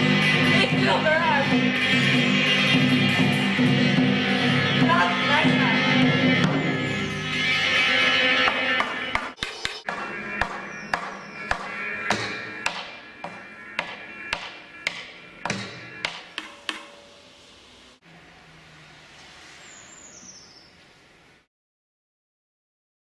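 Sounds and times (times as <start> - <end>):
lingering guitar tones: 0.0 - 9.3
sharp percussive hits: 0.0 - 18.0.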